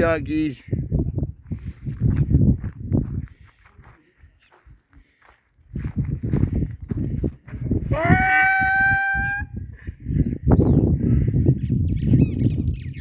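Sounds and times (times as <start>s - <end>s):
footsteps crunching on dry ground: 1.4s - 7.8s.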